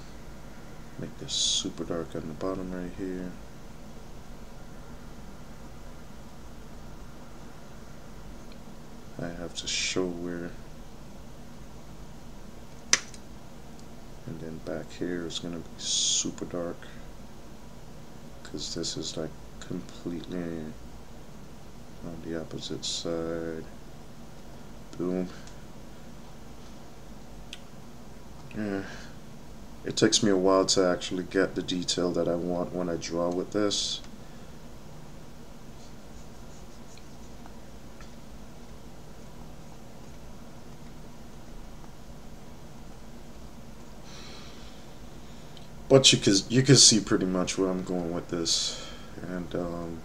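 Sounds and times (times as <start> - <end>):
low room hum: 0.0 - 50.0
sharp clicks: 12.8 - 13.9
stylus scratching on tablet: 35.7 - 37.4.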